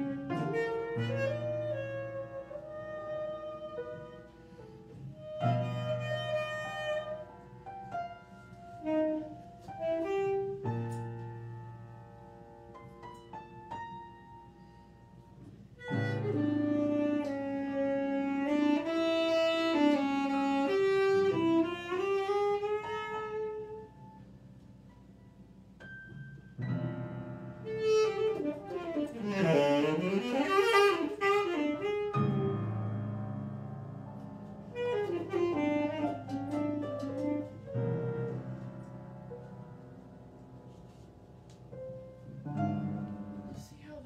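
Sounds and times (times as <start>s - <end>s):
tenor saxophone jazz line: 0.0s - 11.9s, 15.8s - 24.2s, 27.5s - 38.9s
sparse piano notes: 0.0s - 44.0s.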